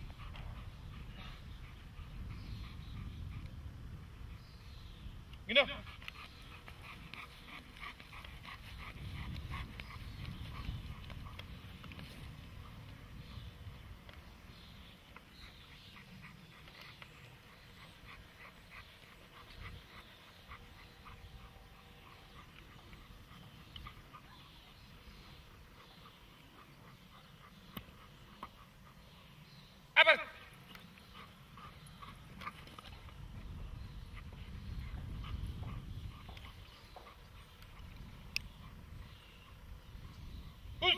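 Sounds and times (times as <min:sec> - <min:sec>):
dog panting: 0:00.0 - 0:04.6, 0:05.7 - 0:29.9, 0:30.5 - 0:40.8.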